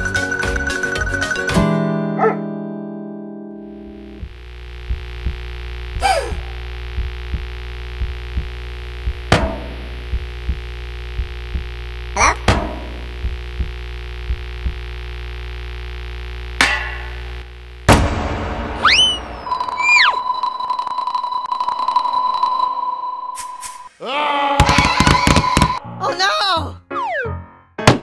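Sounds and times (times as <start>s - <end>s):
low droning hum: 3.7s - 19.6s
soft low thuds: 4.2s - 15.1s.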